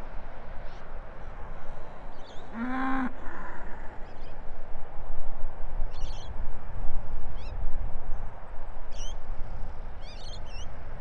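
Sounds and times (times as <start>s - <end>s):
wind noise: 0.0s - 11.0s
cow mooing: 2.5s - 3.2s.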